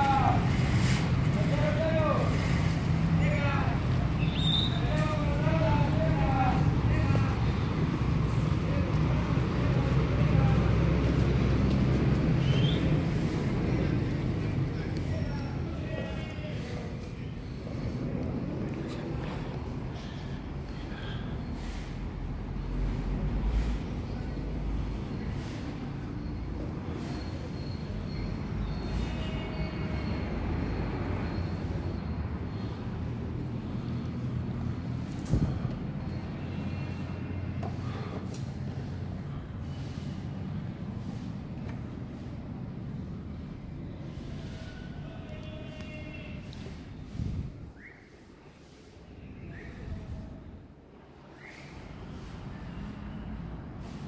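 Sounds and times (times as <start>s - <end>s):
faint voices: 0.0s - 22.5s
vehicle engine rumble: 0.0s - 47.9s.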